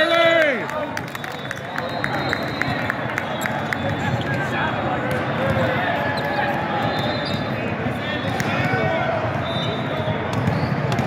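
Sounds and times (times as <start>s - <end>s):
babble of many voices: 0.0s - 11.0s
volleyballs hit and bouncing: 2.2s - 11.0s.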